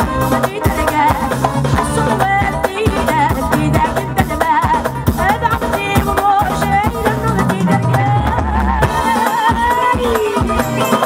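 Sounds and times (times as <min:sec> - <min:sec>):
steady drum beat: 0:00.0 - 0:11.0
woman singing into a microphone: 0:00.0 - 0:11.0.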